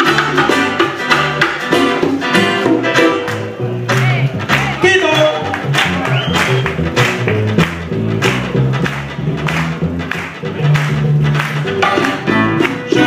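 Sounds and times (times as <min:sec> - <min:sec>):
band playing son music: 0:00.0 - 0:13.0
congas: 0:00.0 - 0:13.0
plucked guitar line: 0:00.0 - 0:13.0
upright bass: 0:00.0 - 0:13.0.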